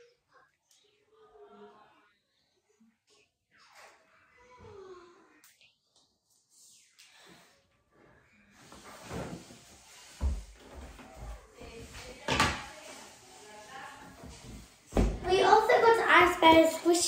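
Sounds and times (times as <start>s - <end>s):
rustling and handling noise: 8.5s - 15.8s.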